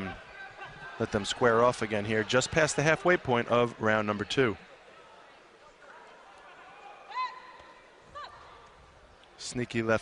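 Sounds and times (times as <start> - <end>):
boxing arena background noise: 0.0 - 10.0.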